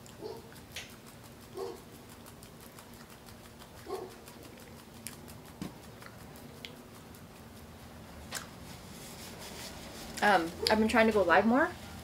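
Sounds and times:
eating clicks: 0.0 - 8.5
dog barking: 0.2 - 0.5, 1.6 - 1.8, 3.8 - 4.3.

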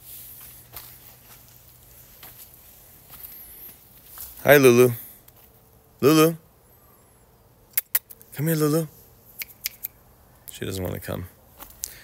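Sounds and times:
footsteps on wood-chip mulch: 0.0 - 5.8, 11.4 - 12.0.

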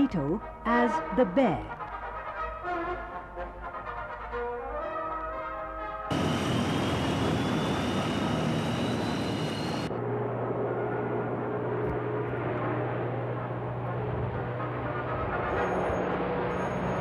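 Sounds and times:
thin whine rising in pitch: 6.1 - 10.1
turboprop engines running loud: 6.1 - 17.0.

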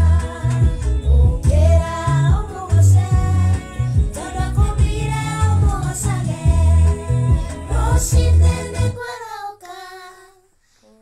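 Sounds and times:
gospel worship song: 0.0 - 11.0
woman and girls singing: 0.0 - 11.0.

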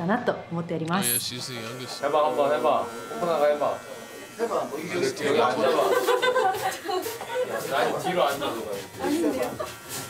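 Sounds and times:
voices talking: 0.8 - 3.0
electric hair clippers buzzing: 0.9 - 10.0.

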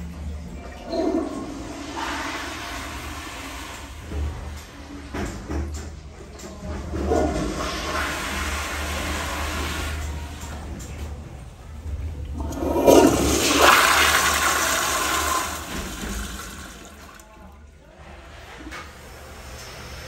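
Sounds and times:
toilet flushing: 0.0 - 20.0.

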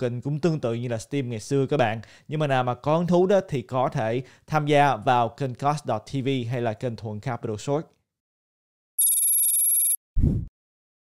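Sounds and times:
high-pitched electronic tone: 9.0 - 10.0.

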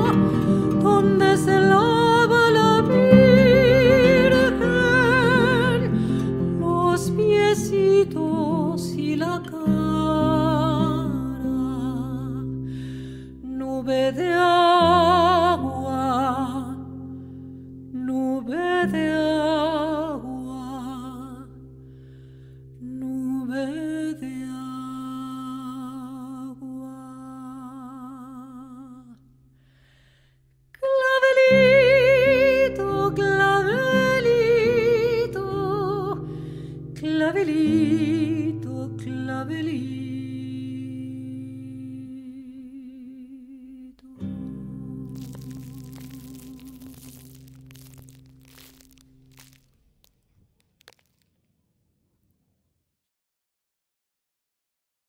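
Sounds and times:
woman singing long wordless note: 0.0 - 12.6, 18.0 - 21.5, 22.8 - 29.2
voice and acoustic guitar chord: 0.0 - 29.2, 30.8 - 48.7
faint clicks and crackles: 45.0 - 52.2.

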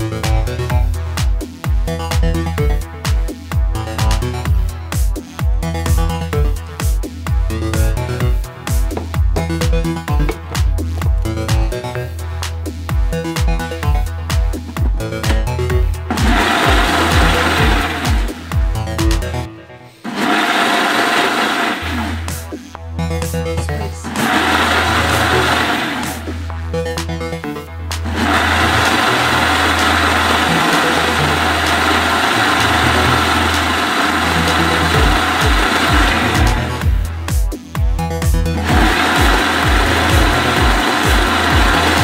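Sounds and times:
electronic music beat: 0.0 - 19.6, 20.2 - 42.0
blender motor and blades running: 14.8 - 19.3, 20.0 - 22.6, 24.0 - 26.5, 28.0 - 37.2, 38.4 - 42.0.

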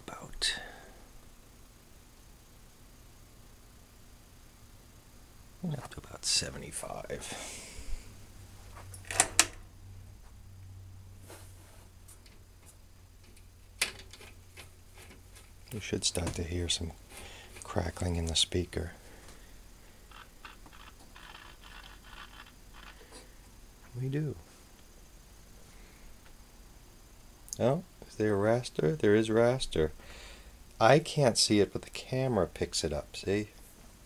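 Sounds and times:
television humming: 0.0 - 34.0.

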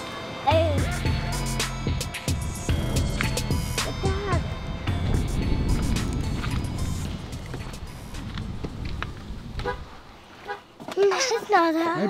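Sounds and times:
child's high-pitched drawn-out voice: 0.4 - 1.0, 4.0 - 4.6, 10.9 - 12.0
low outdoor rumble: 2.4 - 10.2.

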